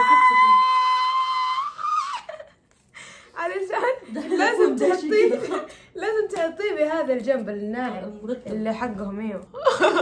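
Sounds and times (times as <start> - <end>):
woman squealing: 0.0 - 2.5.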